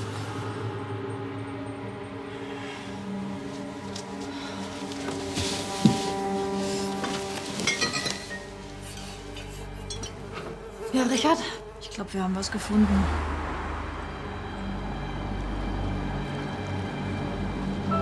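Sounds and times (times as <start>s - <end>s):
glass bottles clinking: 7.5s - 8.5s, 9.8s - 10.2s
flies buzzing: 8.5s - 12.4s.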